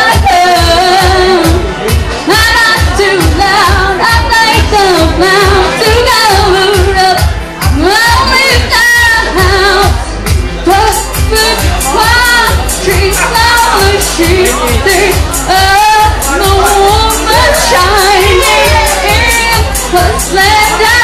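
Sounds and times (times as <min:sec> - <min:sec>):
steady drum beat: 0:00.0 - 0:21.0
woman singing: 0:00.0 - 0:21.0
rock band playing: 0:10.2 - 0:21.0.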